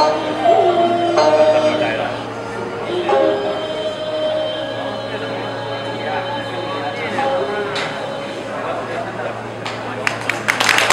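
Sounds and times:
woman singing: 0.0s - 8.5s
vertical flute: 0.0s - 8.7s.

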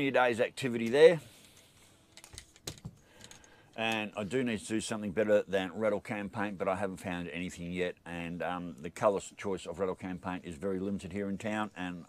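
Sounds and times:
light sharp clicks and knocks: 0.8s - 4.2s.

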